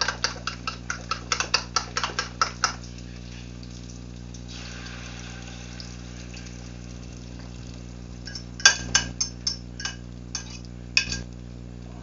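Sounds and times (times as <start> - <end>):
steady low hum: 0.0 - 12.0
metal utensil clinking on bowl rim: 8.2 - 11.2.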